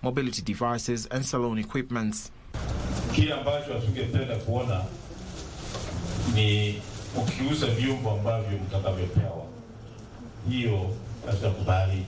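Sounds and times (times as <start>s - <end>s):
man speaking into microphone: 0.0s - 2.4s, 3.1s - 5.0s, 6.2s - 9.6s, 10.4s - 12.0s.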